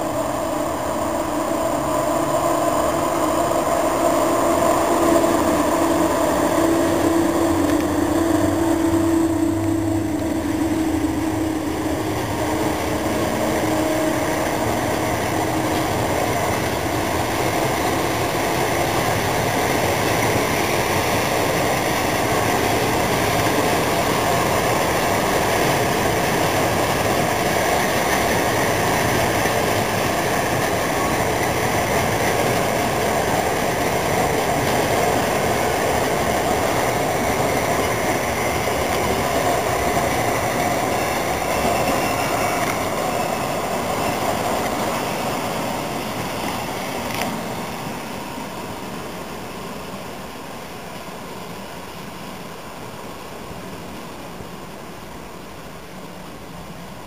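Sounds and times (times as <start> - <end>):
electric locomotive motor hum: 0.0 - 57.0
train coaches rolling past: 0.0 - 57.0.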